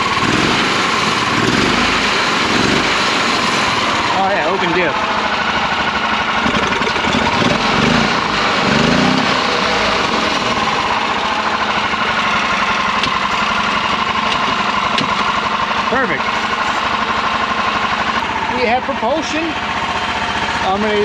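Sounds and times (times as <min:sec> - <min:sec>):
small engine running: 0:00.0 - 0:21.0.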